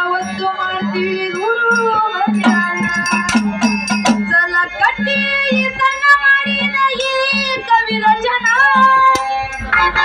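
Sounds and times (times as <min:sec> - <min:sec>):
harmonium: 0:00.0 - 0:10.0
woman singing into a microphone: 0:00.0 - 0:10.0
steady beat: 0:00.8 - 0:10.0.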